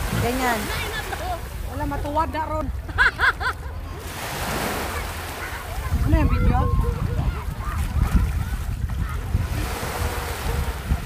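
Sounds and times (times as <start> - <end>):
wind rumbling on microphone: 0.0 - 0.8, 5.6 - 11.0
small waves washing onto sand: 0.0 - 2.8, 3.8 - 11.0.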